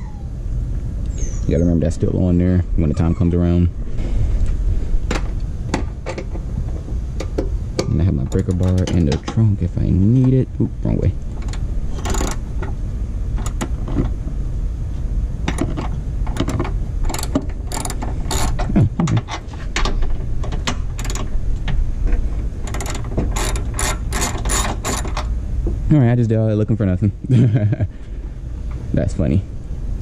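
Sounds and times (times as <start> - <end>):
ratchet wrench clicking: 11.4 - 12.4, 15.5 - 18.7, 21.0 - 21.3, 22.7 - 25.3.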